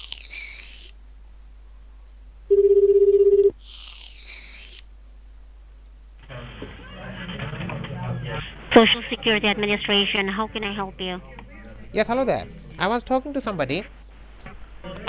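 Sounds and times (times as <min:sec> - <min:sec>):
ringback tone buzzing: 0:02.5 - 0:03.6
murmur of background voices: 0:06.2 - 0:12.8, 0:14.5 - 0:15.0.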